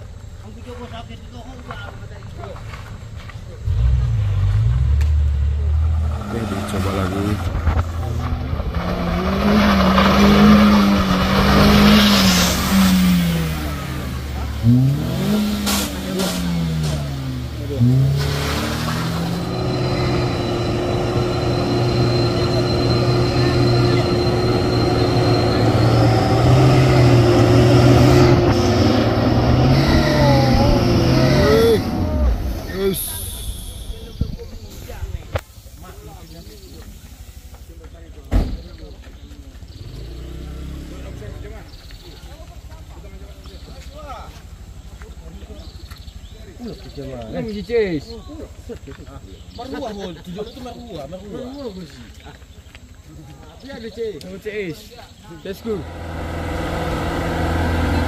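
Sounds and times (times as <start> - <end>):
diesel truck engine under load: 2.2 - 35.4, 55.4 - 58.0
small car engine revving: 3.6 - 34.0, 39.6 - 42.0, 55.4 - 58.0
high whine: 15.6 - 35.4.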